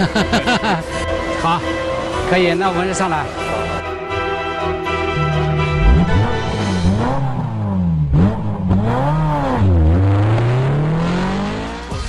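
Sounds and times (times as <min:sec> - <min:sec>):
music: 0:00.0 - 0:08.8, 0:10.4 - 0:12.0
car engine revving: 0:05.1 - 0:12.0.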